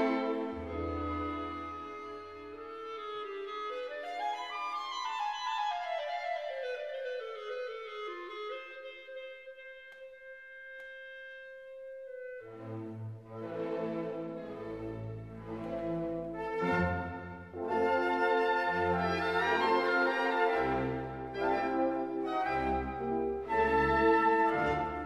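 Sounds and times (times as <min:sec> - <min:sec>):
orchestra with brass: 0:00.0 - 0:04.5, 0:08.5 - 0:25.0
held wind instrument note: 0:08.3 - 0:12.9.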